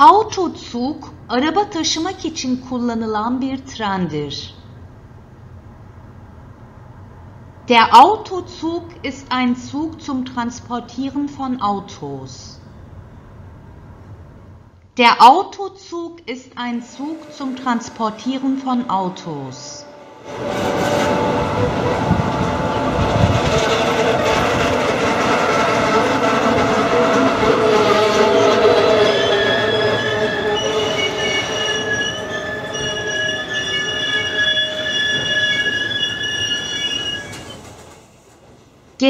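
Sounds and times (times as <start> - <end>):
high-pitched wheel squeal: 16.9 - 24.8, 25.4 - 37.8
train wheels running over rails: 20.3 - 28.8.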